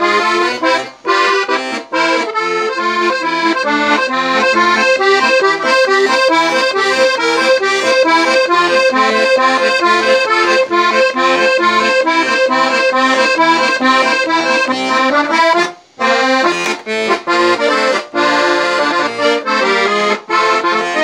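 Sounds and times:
accordion playing a tune: 0.0s - 21.0s.

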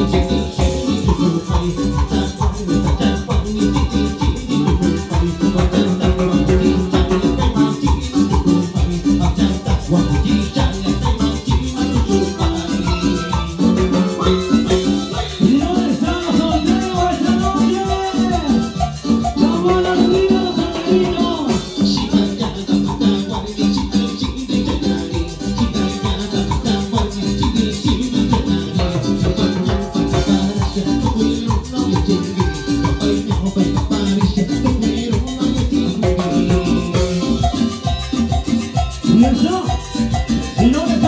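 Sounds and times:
congas: 0.0s - 41.0s
live latin dance music: 0.0s - 41.0s.

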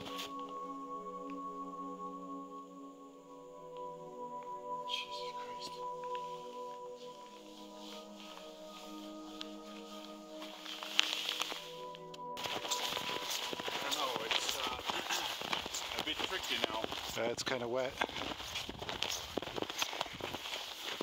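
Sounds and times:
soft ambient music: 0.0s - 21.0s
person's voice: 4.8s - 6.2s, 12.7s - 18.2s
footsteps crunching through snow: 6.0s - 21.0s.

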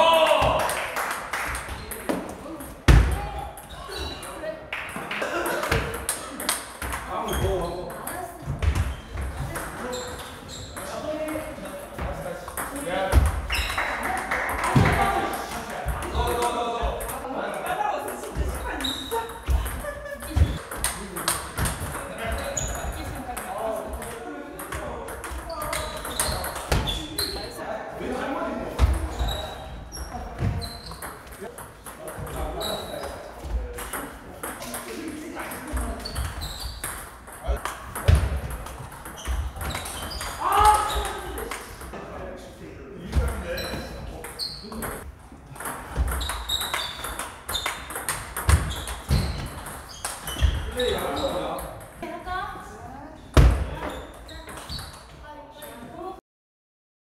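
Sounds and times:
voices chattering in a hall: 0.0s - 56.2s.

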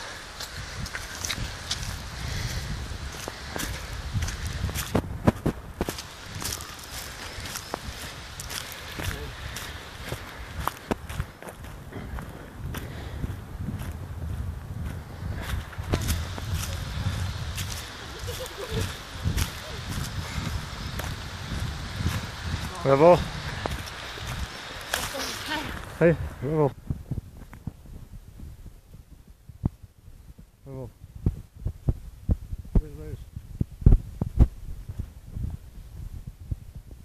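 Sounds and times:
low microphone rumble: 0.0s - 24.8s, 25.6s - 37.0s
footsteps on gravel: 0.4s - 26.0s.

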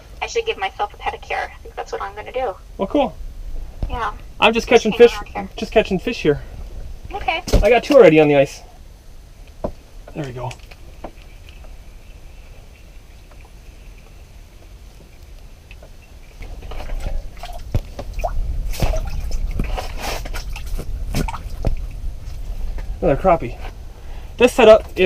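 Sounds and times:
water splashing and dripping: 15.3s - 22.9s.

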